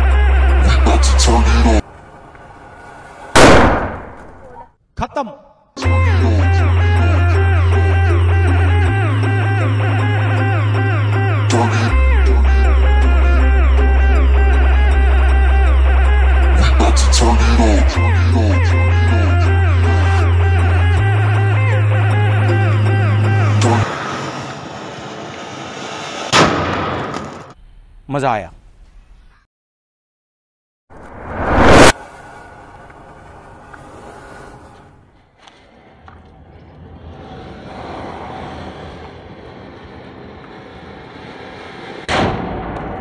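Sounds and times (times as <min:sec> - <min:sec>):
background music: 0:00.0 - 0:01.8, 0:05.8 - 0:23.9
firecracker bang: 0:03.3 - 0:04.4, 0:26.2 - 0:27.4
firecracker hissing: 0:23.8 - 0:26.4, 0:31.0 - 0:35.0.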